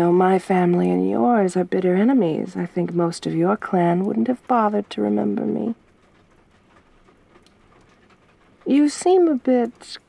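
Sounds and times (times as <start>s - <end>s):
faint steady rain: 0.0s - 10.0s.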